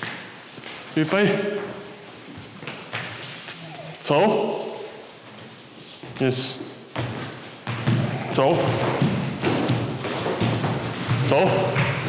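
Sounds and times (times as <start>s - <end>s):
man calling out: 3.5s - 4.8s
footsteps on wooden floor: 4.6s - 12.0s.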